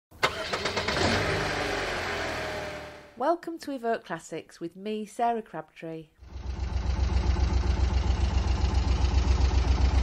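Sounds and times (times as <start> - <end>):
car engine cranking: 0.2 - 3.1
car engine running: 0.2 - 3.1, 6.2 - 10.0.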